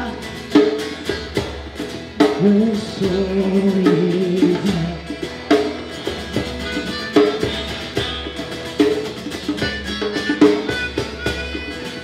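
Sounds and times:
djembe hand drum beating: 0:00.0 - 0:12.0
strummed acoustic guitar: 0:00.0 - 0:12.0.

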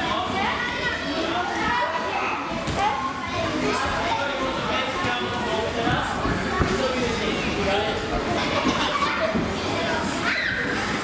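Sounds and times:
children talking and calling out: 0:00.1 - 0:11.0.

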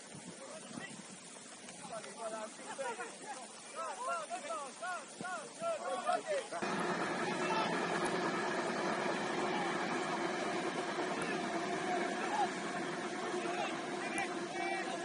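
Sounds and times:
people shouting and calling: 0:03.7 - 0:15.0
steady drone: 0:06.6 - 0:15.0.

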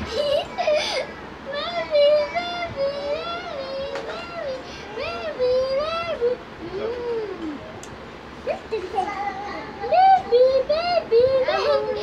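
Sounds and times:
children calling: 0:00.0 - 0:07.7, 0:08.4 - 0:12.0.

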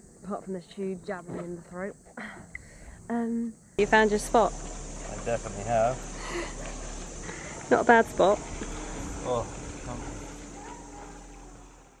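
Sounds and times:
steady low hum: 0:00.0 - 0:12.0
hiss of wind and water: 0:03.8 - 0:12.0.

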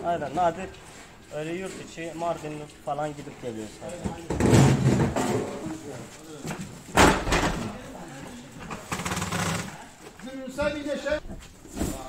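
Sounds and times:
people talking: 0:09.7 - 0:12.0.

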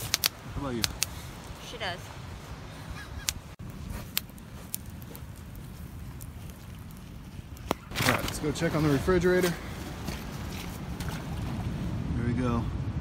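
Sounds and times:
campfire crackling and popping: 0:00.0 - 0:12.1
wind: 0:00.0 - 0:13.0.

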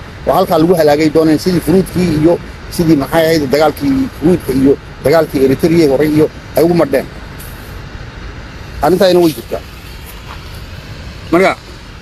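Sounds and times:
man speaking: 0:00.2 - 0:07.1, 0:08.8 - 0:09.7, 0:11.3 - 0:11.7.

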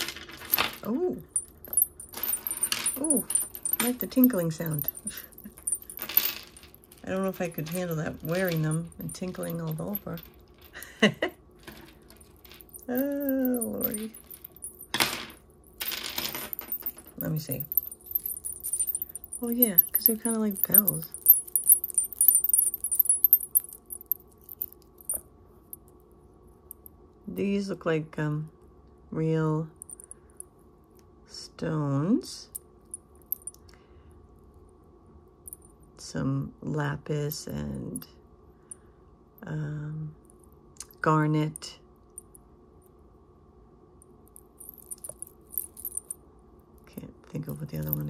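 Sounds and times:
small bells jingling: 0:00.5 - 0:10.3, 0:12.4 - 0:15.0, 0:16.2 - 0:25.2, 0:44.6 - 0:46.2.

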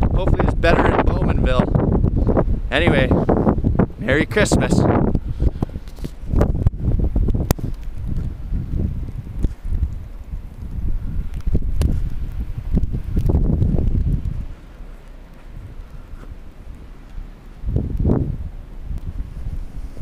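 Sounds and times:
wind gusting over microphone: 0:00.0 - 0:20.0.

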